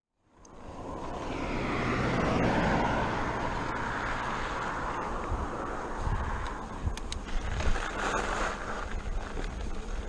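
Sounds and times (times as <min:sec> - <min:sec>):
car passing on road: 0:00.4 - 0:10.0.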